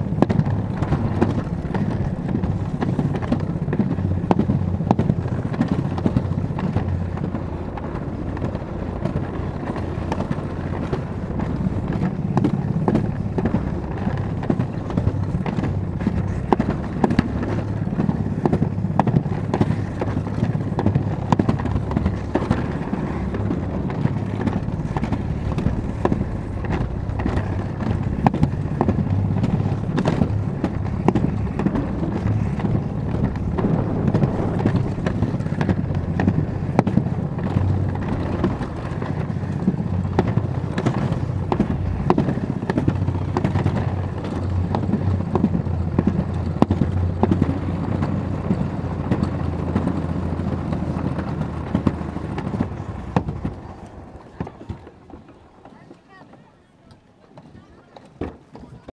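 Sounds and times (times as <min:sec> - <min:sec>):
sharp clicks and knocks: 0:00.0 - 0:53.6
sled rumbling on concrete track: 0:00.0 - 0:58.9.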